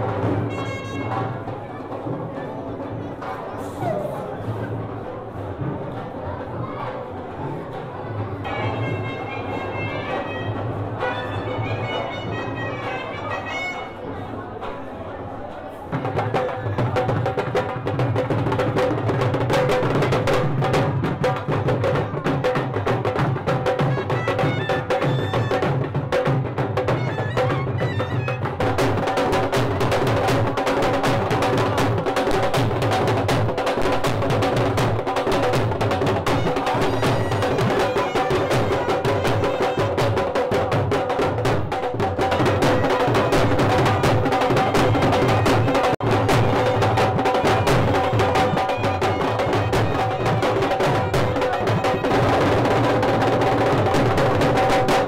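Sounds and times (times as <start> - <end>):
fast continuous drumming: 15.9 - 55.0.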